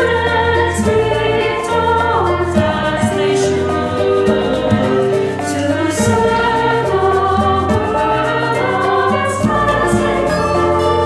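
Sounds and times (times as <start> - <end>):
choir singing a hymn: 0.0 - 11.0
instrumental accompaniment: 0.0 - 11.0.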